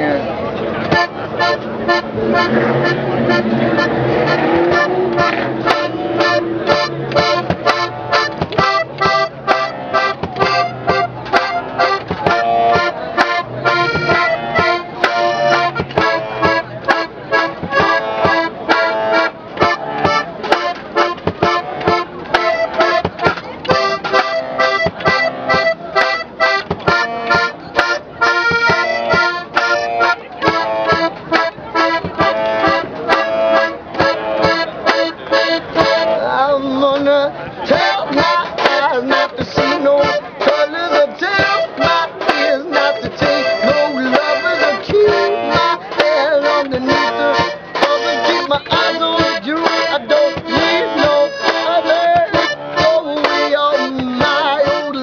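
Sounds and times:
accordion playing a tune: 0:00.0 - 0:55.0
kick drum beat on suitcase: 0:07.2 - 0:09.2.

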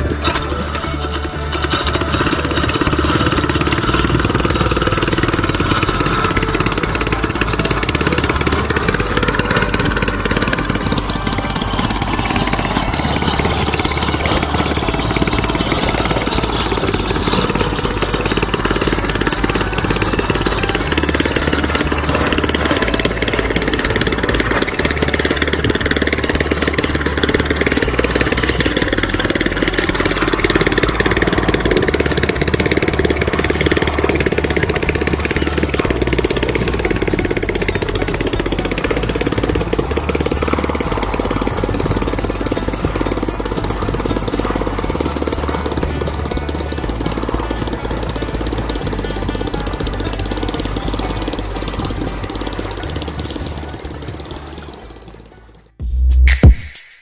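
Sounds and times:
small boat engine running: 0:00.0 - 0:56.5
music playing: 0:00.0 - 0:57.0.

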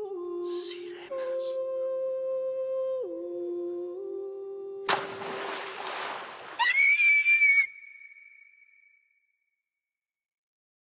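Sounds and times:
high-pitched scream: 0:06.6 - 0:08.8.

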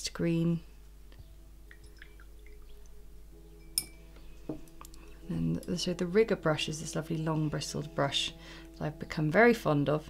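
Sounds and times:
water dripping: 0:01.1 - 0:06.1
brush clinking against glass: 0:03.6 - 0:06.0.

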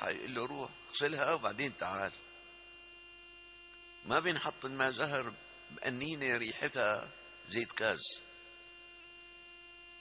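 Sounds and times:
man speaking: 0:00.0 - 0:02.2, 0:04.1 - 0:08.3
faint electrical hum: 0:00.0 - 0:10.0.

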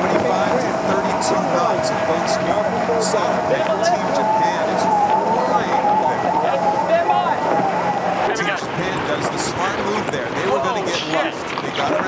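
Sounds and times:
race commentary speech: 0:00.0 - 0:07.5, 0:08.2 - 0:12.0
steady low hum: 0:00.0 - 0:12.0.

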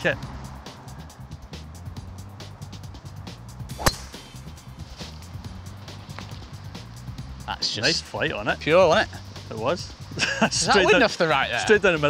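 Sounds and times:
background music: 0:00.0 - 0:12.0
driver striking golf ball: 0:03.7 - 0:04.5.

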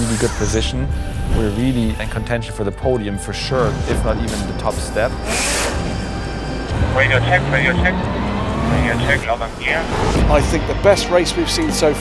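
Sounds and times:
pneumatic air tool hissing: 0:00.0 - 0:01.3, 0:05.2 - 0:06.0.

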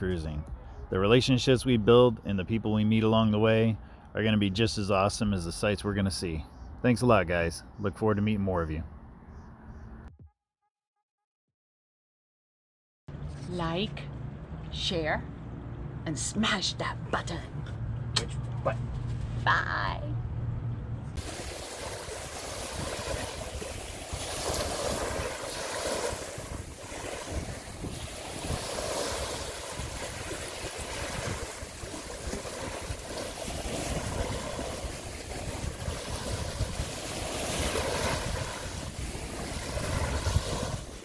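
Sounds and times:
surf washing onto beach: 0:21.2 - 0:41.0
wind on microphone: 0:21.2 - 0:41.0.

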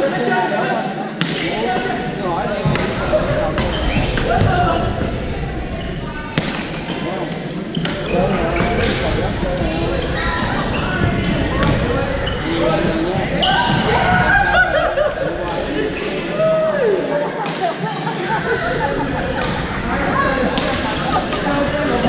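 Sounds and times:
echoing chatter and calls: 0:00.0 - 0:22.0.

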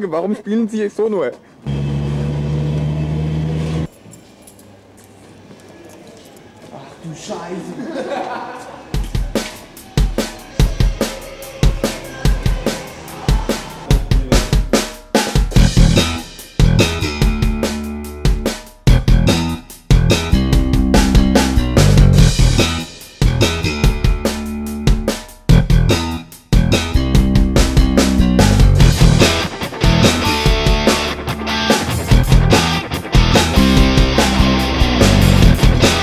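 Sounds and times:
drum kit rock beat: 0:08.9 - 0:36.0.

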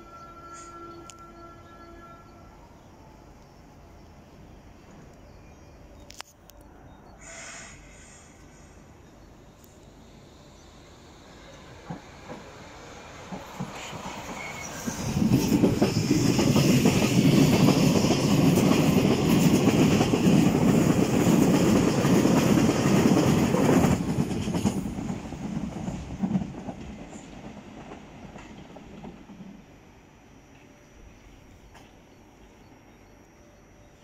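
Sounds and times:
train running past on rails: 0:00.0 - 0:34.0.

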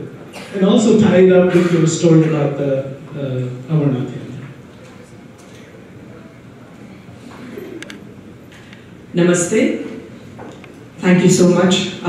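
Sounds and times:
faint room murmur: 0:00.0 - 0:12.0.

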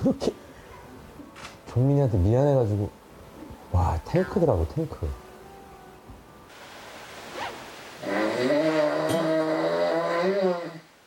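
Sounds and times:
man snoring heavily: 0:08.0 - 0:11.0.

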